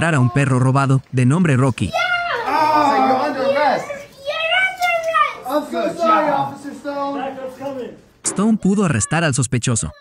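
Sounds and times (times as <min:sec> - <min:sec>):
boy speaking: 0:01.8 - 0:06.5, 0:09.0 - 0:10.0.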